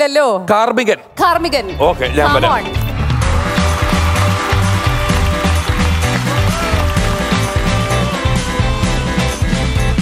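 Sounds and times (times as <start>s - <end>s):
loud rock music: 1.7s - 10.0s.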